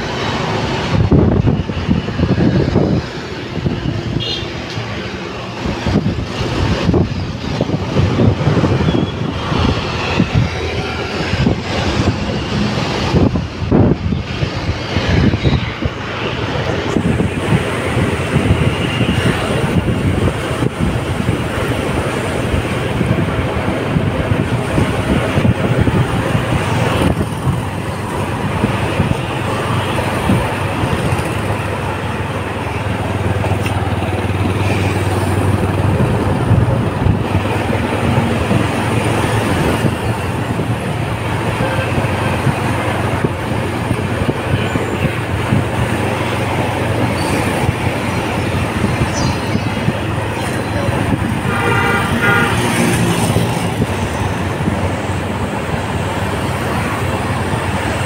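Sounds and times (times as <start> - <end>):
road noise: 0.0 - 58.0
vehicle horn: 4.2 - 4.6, 51.5 - 52.9.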